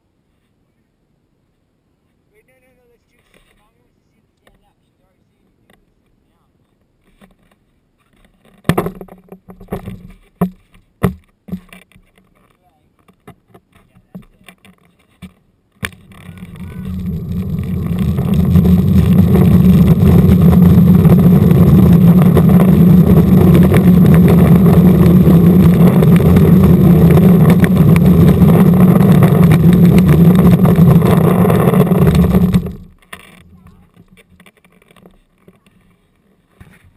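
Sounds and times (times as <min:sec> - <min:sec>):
wheels rumbling on asphalt: 0:06.7 - 0:36.9.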